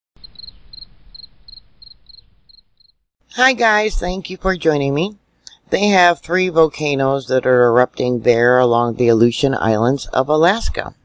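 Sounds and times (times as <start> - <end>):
cricket chirping: 0.2 - 3.0.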